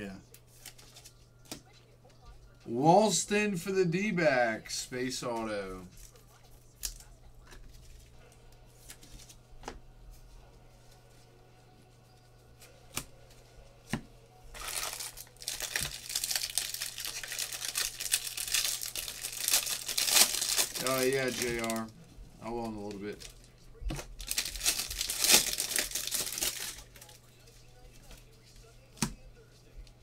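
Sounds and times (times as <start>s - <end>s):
foil wrapper ripping and crinkling: 14.5s - 27.2s.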